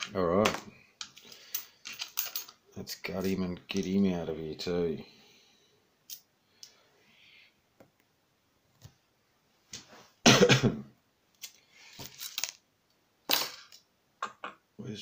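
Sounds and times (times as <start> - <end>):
person coughing: 10.3 - 10.9.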